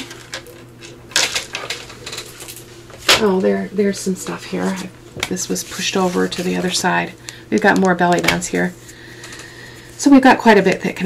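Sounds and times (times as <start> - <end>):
paper rustling: 4.2 - 6.8.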